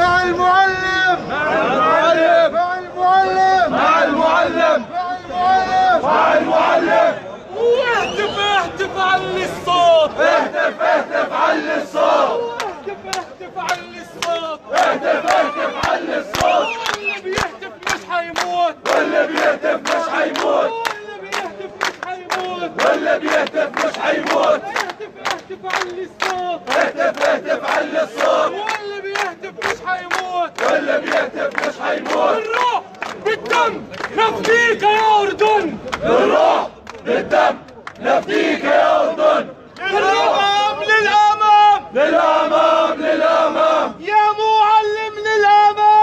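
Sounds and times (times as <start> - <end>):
crowd of men chanting slogans: 0.0 - 45.8
rhythmic hand claps: 12.6 - 38.4.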